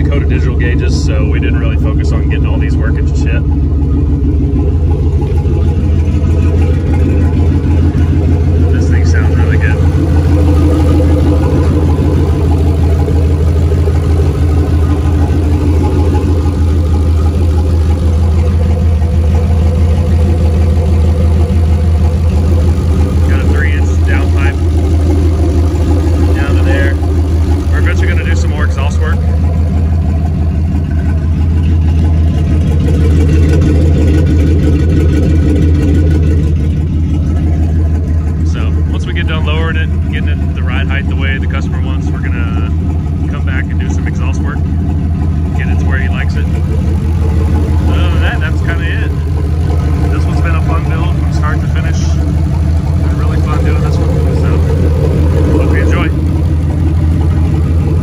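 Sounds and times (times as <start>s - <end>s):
car engine idling: 0.0s - 58.0s.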